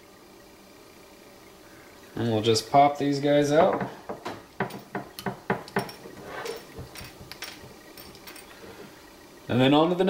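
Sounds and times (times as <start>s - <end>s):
jig heads tapping on countertop: 3.7s - 6.0s.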